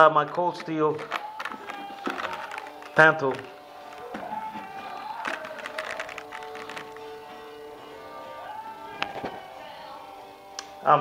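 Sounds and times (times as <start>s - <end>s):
music with sustained tones: 0.2s - 11.0s.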